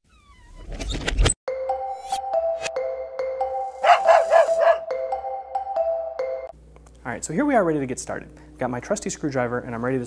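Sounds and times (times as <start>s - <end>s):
musical jingle of struck notes: 1.5s - 6.6s
dog barking: 3.8s - 4.9s.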